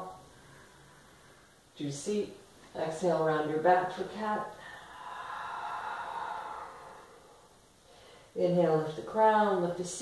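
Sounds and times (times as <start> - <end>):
woman exhaling: 4.6 - 8.3.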